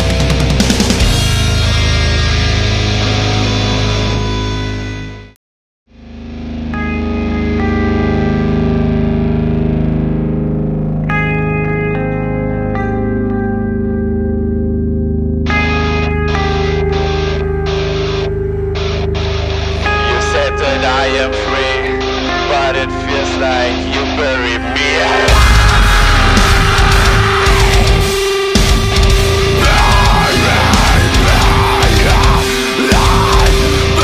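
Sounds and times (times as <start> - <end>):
heavy metal band playing: 0.0 - 5.0, 6.1 - 13.4, 15.5 - 34.0
echoing guitar sustained notes: 0.0 - 34.0.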